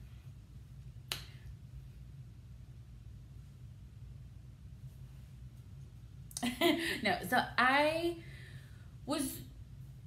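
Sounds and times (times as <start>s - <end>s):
low steady room hum: 0.0s - 10.0s
finger snap: 1.0s - 1.5s.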